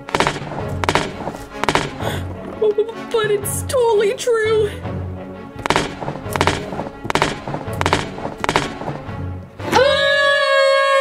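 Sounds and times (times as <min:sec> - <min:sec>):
heavy stomping footsteps: 0:00.0 - 0:02.4, 0:05.6 - 0:09.4
background music with low bass: 0:00.0 - 0:10.0.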